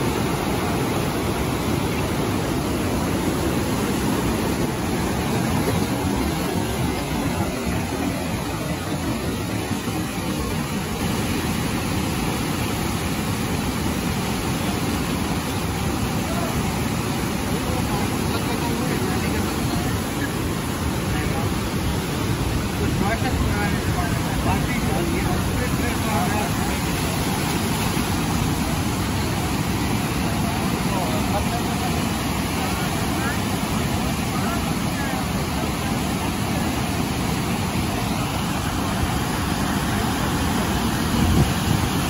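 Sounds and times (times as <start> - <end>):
whitewater rapids rushing: 0.0 - 42.0.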